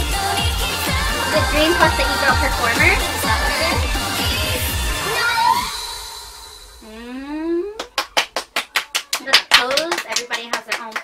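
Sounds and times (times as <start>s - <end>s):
whooping voices: 0.9s - 5.8s
people clapping rapidly: 7.8s - 11.0s.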